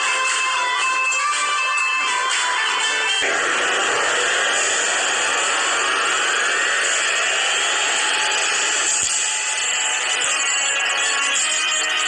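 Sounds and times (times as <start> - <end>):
rising tones: 3.2 - 11.0.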